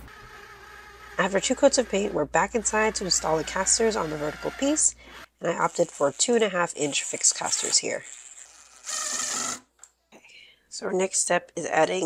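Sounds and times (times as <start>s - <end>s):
cordless drill driving screw: 0.0s - 6.1s, 7.4s - 9.7s.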